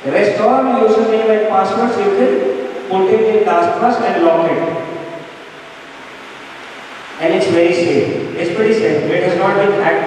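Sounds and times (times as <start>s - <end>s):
person speaking: 0.0s - 5.1s, 7.2s - 10.0s
hall room noise hiss: 0.0s - 10.0s.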